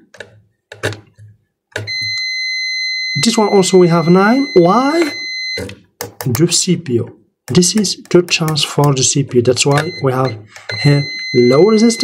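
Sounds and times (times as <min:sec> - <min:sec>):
multimeter steady high beep: 0:01.9 - 0:05.8, 0:09.7 - 0:12.0.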